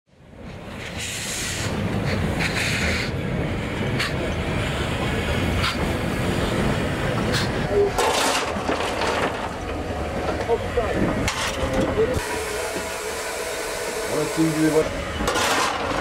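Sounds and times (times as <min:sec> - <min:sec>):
steam locomotive rumble: 0:00.2 - 0:16.0
steam hiss: 0:00.8 - 0:07.9, 0:12.1 - 0:15.0.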